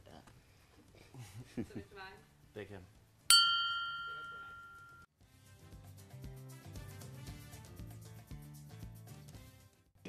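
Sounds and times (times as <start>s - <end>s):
bell-like chime: 3.3s - 5.1s.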